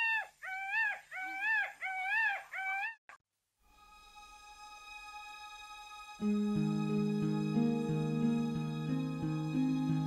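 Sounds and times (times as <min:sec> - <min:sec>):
soft music: 0:03.6 - 0:10.0.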